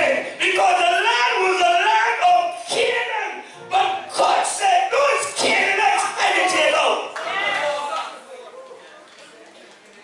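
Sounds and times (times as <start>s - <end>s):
murmur of the hall: 0.0s - 10.0s.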